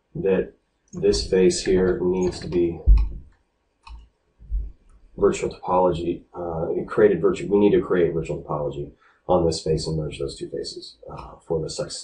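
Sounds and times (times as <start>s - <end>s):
soft low thump: 1.0s - 3.3s.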